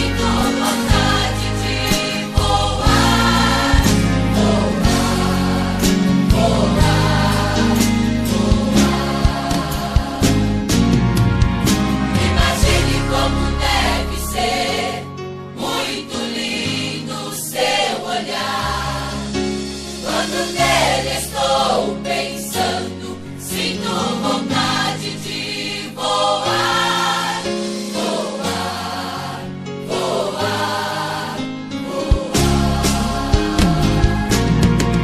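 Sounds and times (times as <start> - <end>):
choir singing a hymn: 0.0 - 11.0, 12.0 - 35.0
bass line: 0.0 - 14.7, 32.4 - 35.0.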